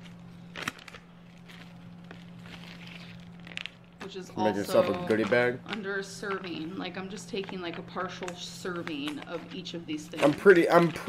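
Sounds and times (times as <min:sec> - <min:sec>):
plastic bag rustling and crinkling: 0:00.0 - 0:06.6, 0:07.4 - 0:11.0.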